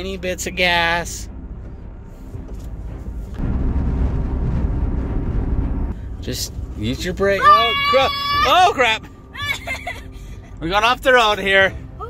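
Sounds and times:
truck engine rumble inside cab: 0:00.0 - 0:07.0.

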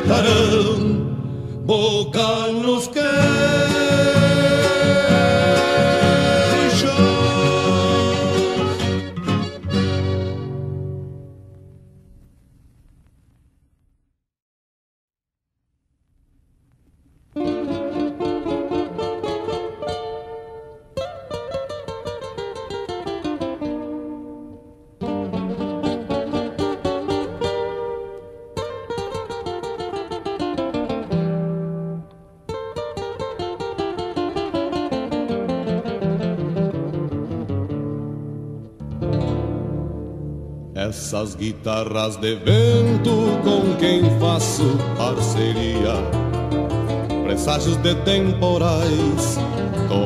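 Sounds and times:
acoustic guitar plucked runs: 0:00.0 - 0:12.0, 0:17.4 - 0:50.0.

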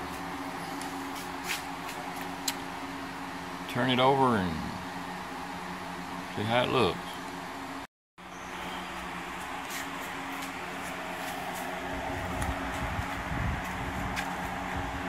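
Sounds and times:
fan or air conditioner hum: 0:00.0 - 0:15.0.

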